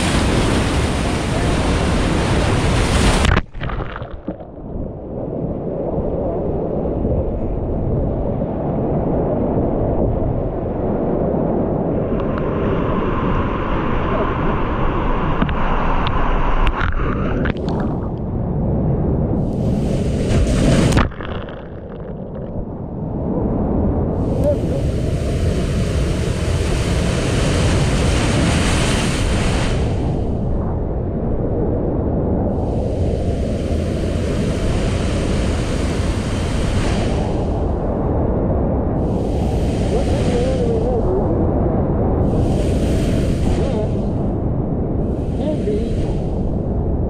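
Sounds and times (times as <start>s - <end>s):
waves breaking: 0.0s - 7.2s, 19.4s - 23.0s, 24.2s - 30.9s, 32.5s - 38.2s, 38.9s - 47.0s
wind buffeting microphone: 0.0s - 47.0s.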